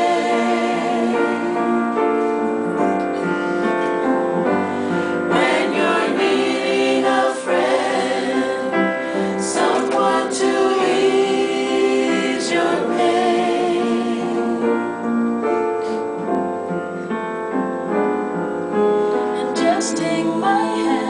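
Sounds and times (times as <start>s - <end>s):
piano accompaniment: 0.0s - 21.0s
woman singing gospel-style song: 19.4s - 21.0s.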